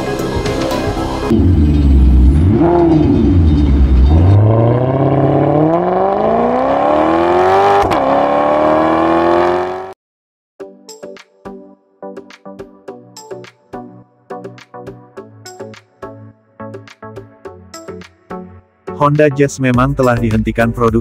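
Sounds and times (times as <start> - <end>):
car engine revving and accelerating: 1.3 - 10.0.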